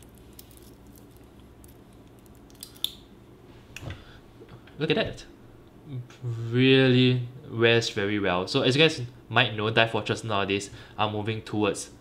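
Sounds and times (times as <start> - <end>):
watch bracelet rattling: 0.0 - 2.7.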